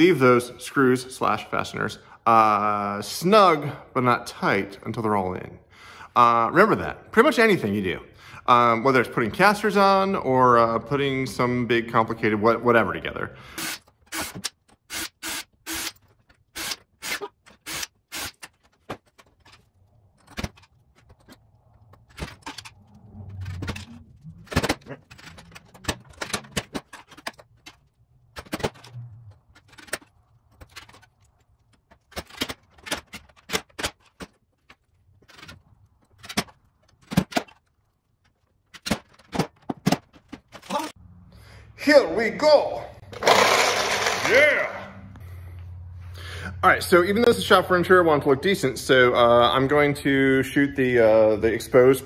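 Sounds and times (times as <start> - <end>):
small parts clicking on wooden bench: 13.8 - 40.8.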